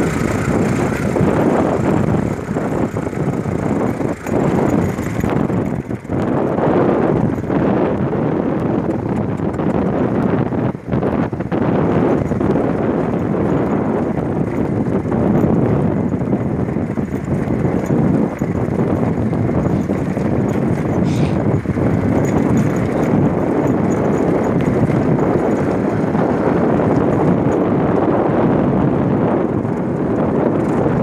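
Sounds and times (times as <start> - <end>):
vehicle on rough dirt road: 0.0 - 31.0.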